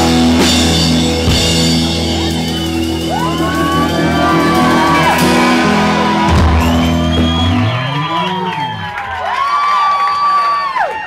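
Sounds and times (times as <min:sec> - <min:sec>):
live rock band playing: 0:00.0 - 0:09.2
audience whooping and cheering: 0:01.8 - 0:11.0.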